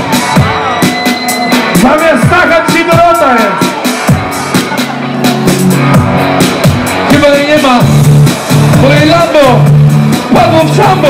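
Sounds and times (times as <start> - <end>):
hip-hop beat with heavy bass: 0.0 - 11.0
person rapping into microphone: 1.8 - 3.7, 10.3 - 11.0.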